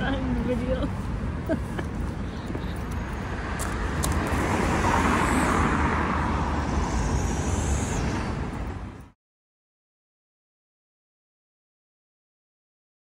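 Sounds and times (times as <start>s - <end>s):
cars passing: 0.0s - 9.2s
low traffic rumble: 0.0s - 9.2s.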